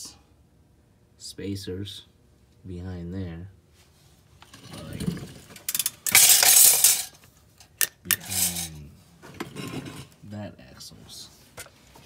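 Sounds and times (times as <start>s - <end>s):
metallic rattling and scraping: 4.4s - 8.8s.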